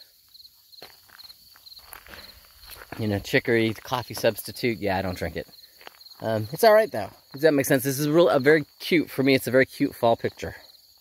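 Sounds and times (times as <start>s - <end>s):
crickets chirping: 0.0s - 11.0s
footsteps rustling in weeds: 0.8s - 3.9s.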